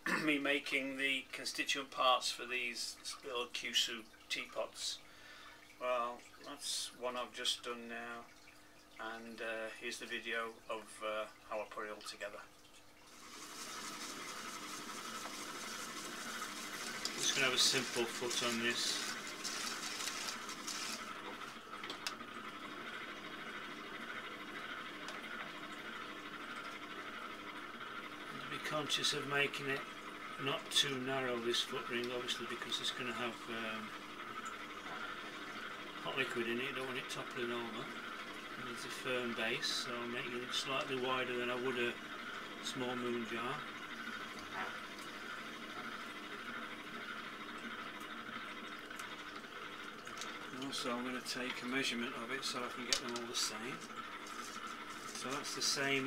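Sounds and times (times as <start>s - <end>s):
potter's wheel hum: 13.0s - 56.0s
trimming tool shaving clay: 15.2s - 21.6s.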